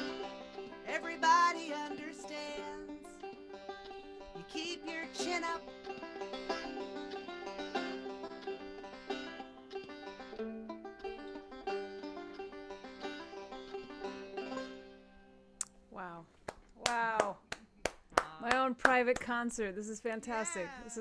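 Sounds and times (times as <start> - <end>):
banjo picking: 0.0 - 15.6.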